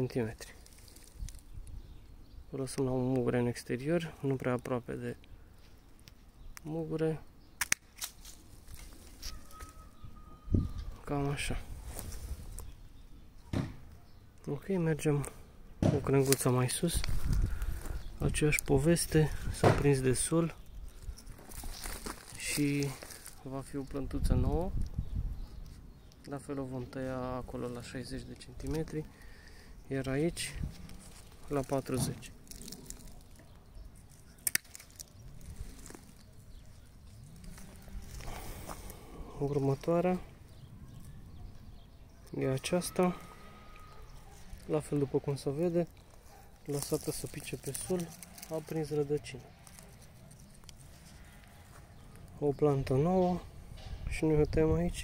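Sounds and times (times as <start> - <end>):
quiet outdoor background: 0.0 - 55.0
pruning shears snipping cane: 7.6 - 9.4, 34.1 - 35.2.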